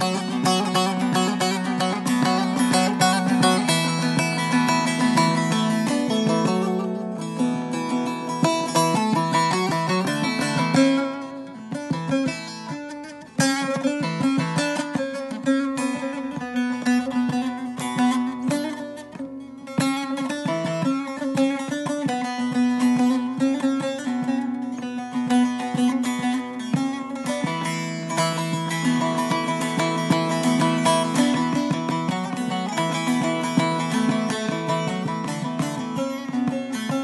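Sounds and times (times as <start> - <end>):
long-necked lute picked rapidly: 0.0 - 37.0.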